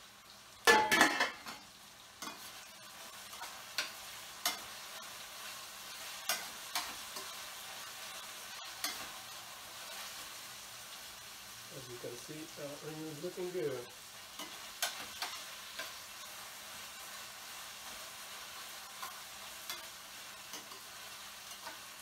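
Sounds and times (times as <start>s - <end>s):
food sizzling while frying: 0.0s - 22.0s
metal pot lid clattering: 0.7s - 1.6s.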